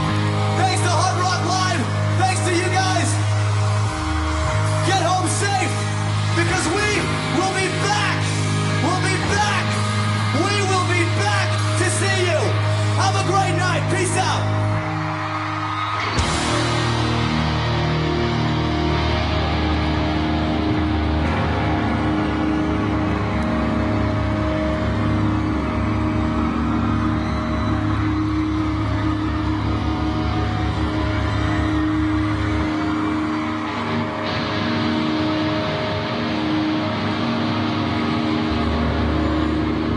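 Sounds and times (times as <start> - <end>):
live pop-punk band music: 0.0 - 39.9.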